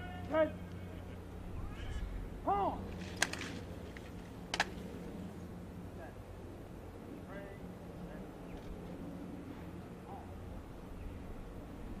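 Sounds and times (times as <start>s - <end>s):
person shouting drill command: 0.0s - 0.6s, 2.4s - 2.8s
low steady hum: 0.0s - 12.0s.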